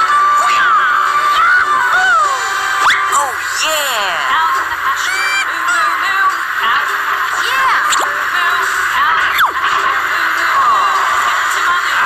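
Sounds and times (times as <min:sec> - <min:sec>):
toy electronic sound effects: 0:02.8 - 0:04.4, 0:05.0 - 0:05.9, 0:07.4 - 0:08.2, 0:09.2 - 0:09.7.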